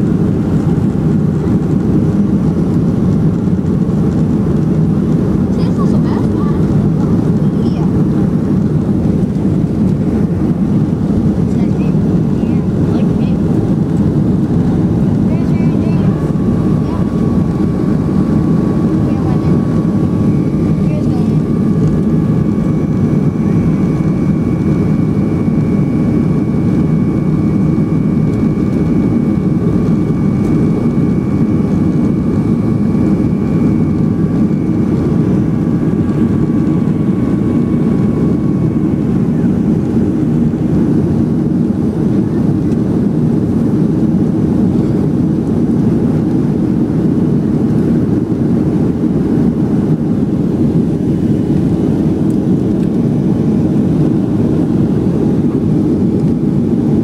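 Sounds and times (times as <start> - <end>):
jet engine cabin rumble: 0.0 - 57.0.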